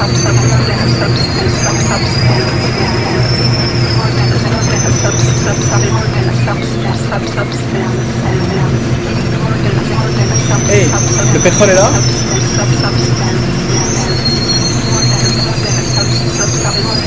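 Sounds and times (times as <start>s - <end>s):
high whining tones: 0.0s - 17.0s
indistinct voices: 0.0s - 17.0s
traffic engine hum: 0.0s - 17.0s.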